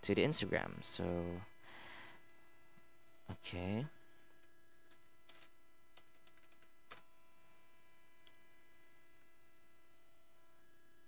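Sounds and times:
faint mains hum: 0:00.0 - 0:11.0.

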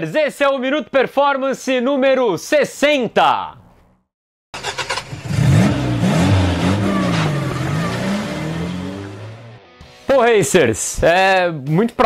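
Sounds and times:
engine revving: 0:04.6 - 0:09.7.

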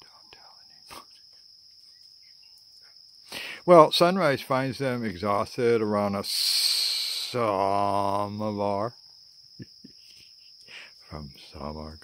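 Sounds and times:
insect trill: 0:00.0 - 0:12.0.

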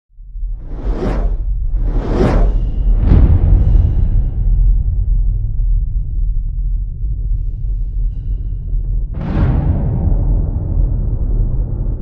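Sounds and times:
deep rumble: 0:00.1 - 0:12.0
cinematic whoosh: 0:00.5 - 0:05.3.

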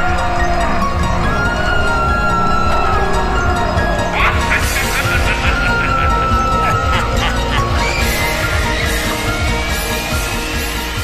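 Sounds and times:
rising yelp-like cry: 0:00.0 - 0:10.6
film score music: 0:00.0 - 0:11.0.

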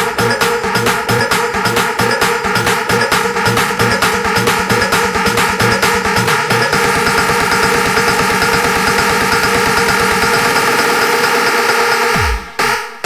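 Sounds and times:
sustained synth chords: 0:00.0 - 0:12.2
rapid drum roll: 0:00.0 - 0:12.4.

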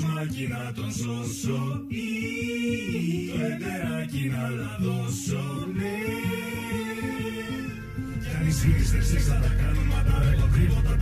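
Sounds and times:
song with sung vocals: 0:00.0 - 0:11.0.

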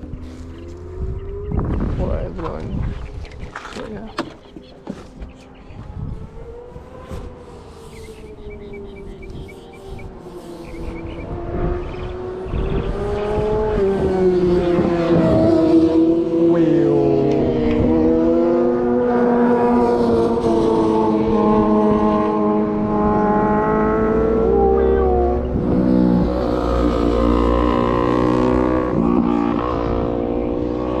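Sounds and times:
car engine revving: 0:05.6 - 0:31.0.

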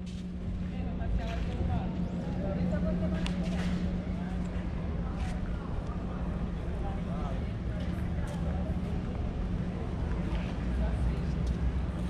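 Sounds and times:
steady low rumble: 0:00.0 - 0:12.0
people talking: 0:00.6 - 0:12.0.

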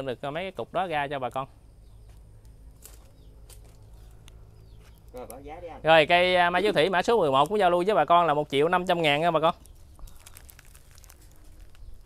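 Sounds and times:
steady low hum: 0:00.0 - 0:07.2
man speaking: 0:05.2 - 0:09.6.

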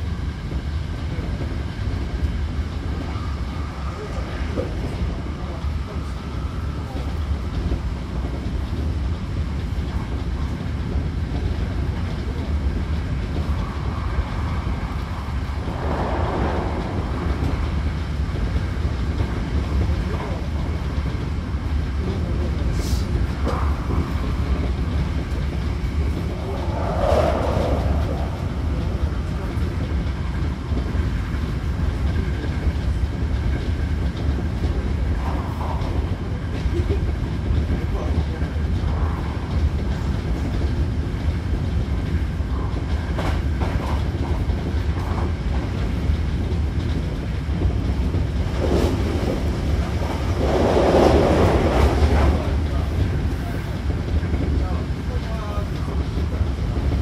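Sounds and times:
train wheels rumbling: 0:00.0 - 0:57.0.

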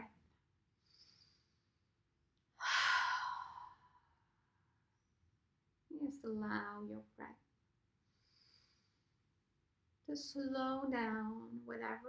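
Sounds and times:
faint breath: 0:00.8 - 0:01.7, 0:02.6 - 0:04.2, 0:08.1 - 0:09.2
woman sighing: 0:02.6 - 0:04.0.

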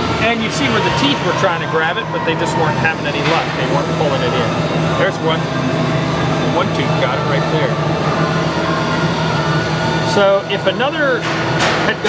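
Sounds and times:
machinery humming: 0:00.0 - 0:12.0.

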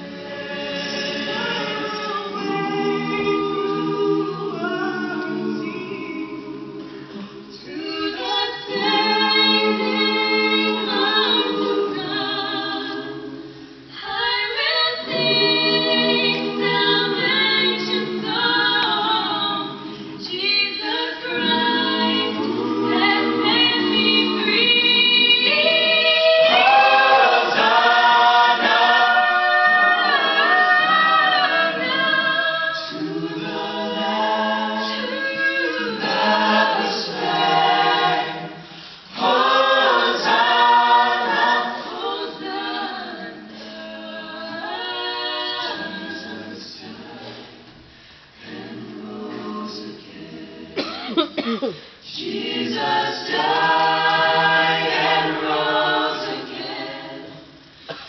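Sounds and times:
choir singing in harmony: 0:00.0 - 0:51.2, 0:52.0 - 0:58.0.

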